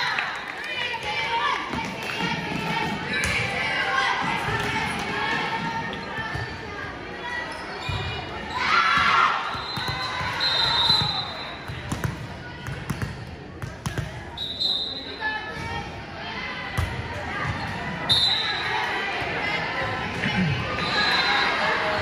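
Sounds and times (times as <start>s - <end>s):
spectators' voices: 0.0s - 22.0s
referee whistle: 9.5s - 11.7s, 14.3s - 15.2s, 18.1s - 18.7s, 20.8s - 21.6s.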